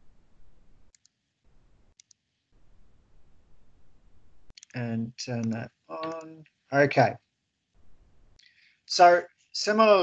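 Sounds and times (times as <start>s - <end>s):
computer mouse clicks: 0.9s - 1.2s, 1.9s - 2.2s, 4.5s - 6.3s.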